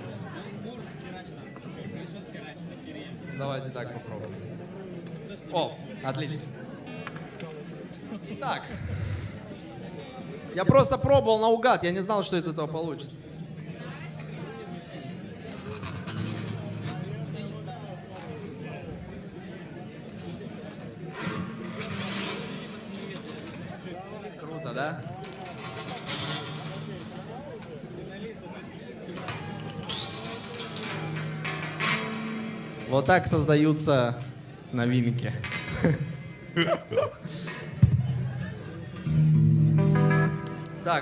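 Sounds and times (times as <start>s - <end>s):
prepared acoustic guitar fingerstyle: 15.5s - 19.0s, 29.2s - 34.5s, 37.5s - 41.0s.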